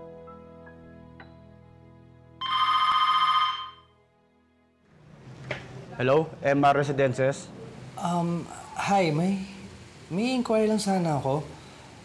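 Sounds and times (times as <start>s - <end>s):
background music: 0.0s - 5.1s
desk telephone ringing: 2.4s - 3.9s.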